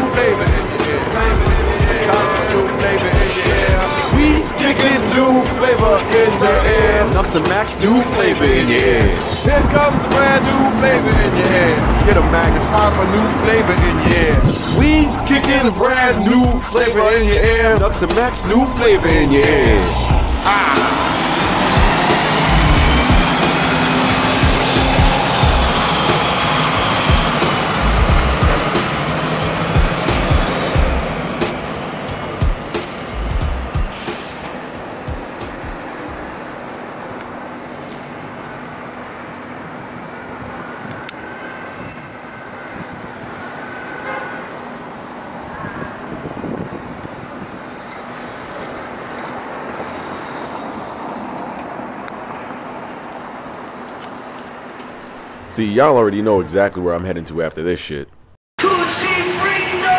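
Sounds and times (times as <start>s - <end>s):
music with heavy beat and synth: 0.0s - 36.4s
city street traffic: 0.0s - 59.9s.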